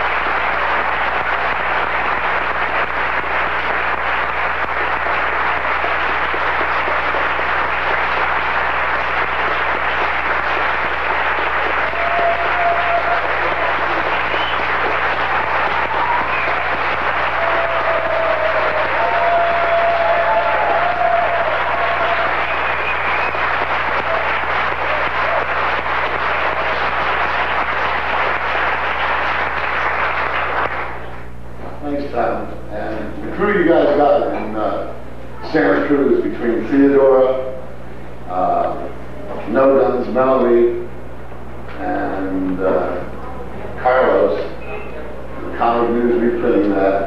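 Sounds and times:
audience applauding: 0.0 - 31.4.

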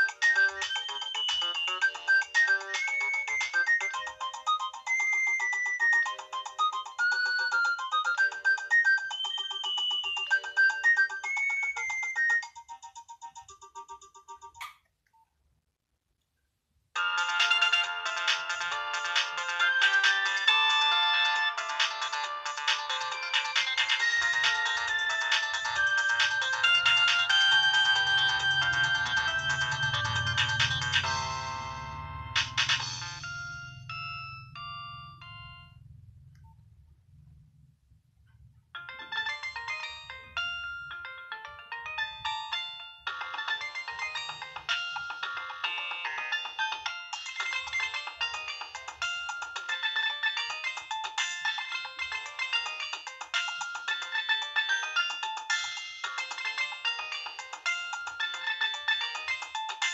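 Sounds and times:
polyphonic ringtone melody: 0.0 - 14.7, 17.0 - 36.0, 38.8 - 59.9.

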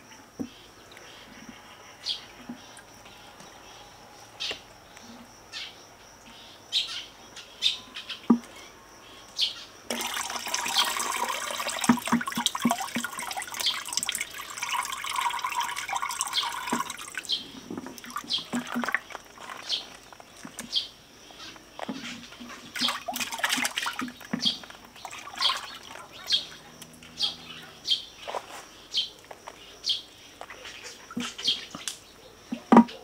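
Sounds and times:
buttermilk splashing into pail: 9.9 - 17.3, 17.9 - 20.7, 22.7 - 26.4
small birds chirping: 12.9 - 23.2, 23.8 - 33.0.

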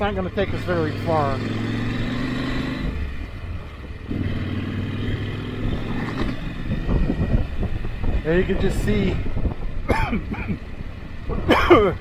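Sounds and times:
motorcycle riding on gravel: 0.0 - 12.0
man coughing: 9.8 - 10.6, 11.4 - 12.0.

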